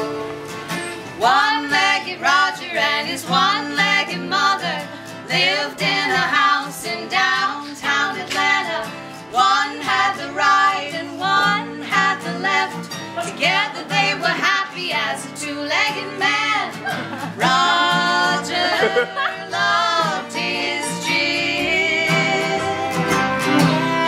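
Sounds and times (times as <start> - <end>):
acoustic guitar: 0.0 - 24.0
mandolin: 0.0 - 24.0
woman singing: 1.2 - 24.0
upright bass: 16.9 - 24.0.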